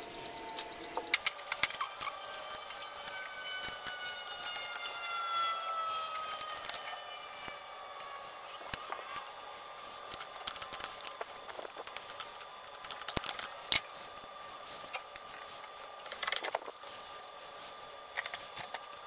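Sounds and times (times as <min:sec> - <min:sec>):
faint gliding tone: 0:00.0 - 0:09.9
wrench metal clicks and scrapes: 0:01.1 - 0:09.3.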